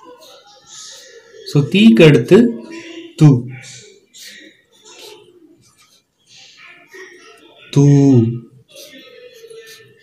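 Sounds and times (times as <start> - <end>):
marker rubbing on paper: 3.6 - 7.1, 8.6 - 10.0.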